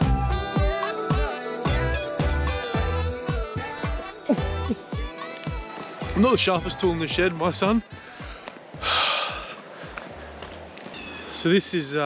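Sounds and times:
background music: 0.0s - 10.8s
breathy puff of noise: 8.0s - 10.3s.

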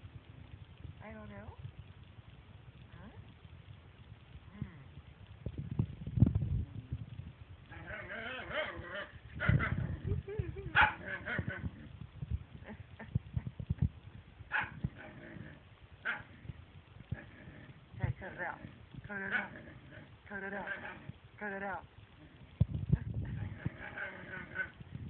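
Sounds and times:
dog growling: 7.7s - 12.0s, 14.5s - 21.6s, 23.3s - 24.8s
dog grunting: 10.8s - 11.9s, 14.6s - 16.5s, 17.1s - 21.1s, 23.4s - 24.8s.

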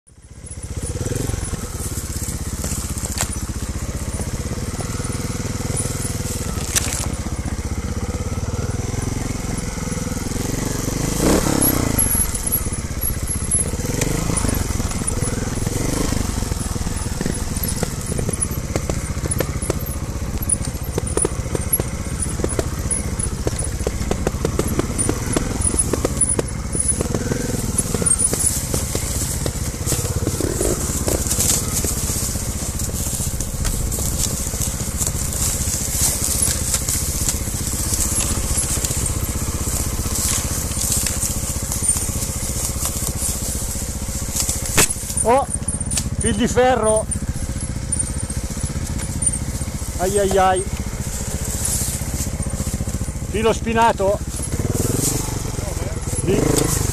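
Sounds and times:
motorcycle engine at low revs: 0.0s - 56.9s
tyres cracking twigs and stones: 0.6s - 7.9s, 8.6s - 56.9s.

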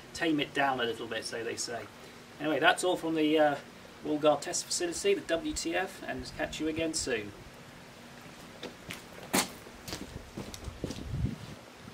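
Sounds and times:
footsteps on concrete: 8.2s - 11.2s.

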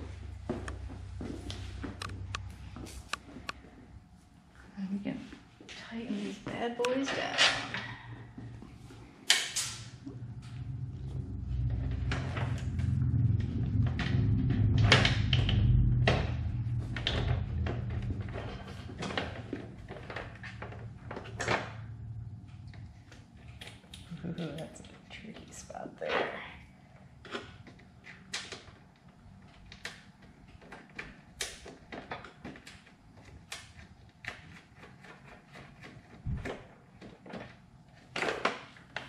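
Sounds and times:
low rumble: 7.7s - 24.5s.

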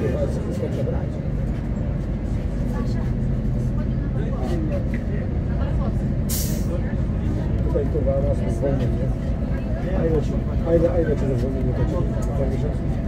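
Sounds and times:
bus engine drone: 0.0s - 13.0s.

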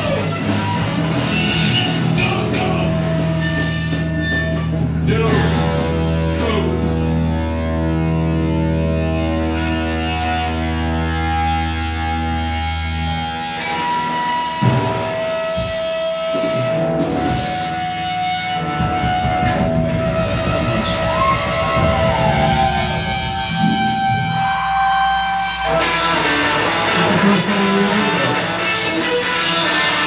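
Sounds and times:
rock band playing loud: 0.0s - 30.0s
drum hits: 18.6s - 25.4s.

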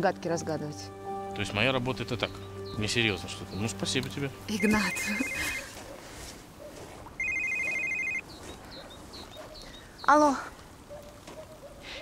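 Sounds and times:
mobile phone ringing: 4.5s - 5.7s, 7.2s - 8.2s.

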